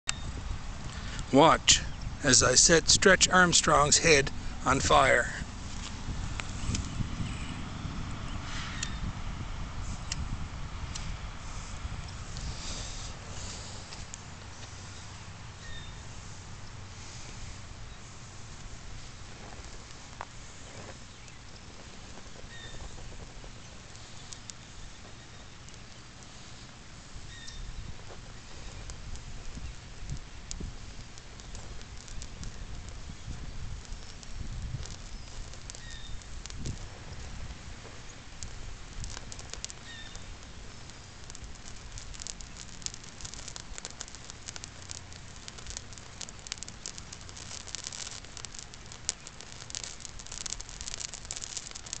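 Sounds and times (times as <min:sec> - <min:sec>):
burning plastic crackling and popping: 0:00.0 - 0:52.0
low steady rumble: 0:00.0 - 0:52.0.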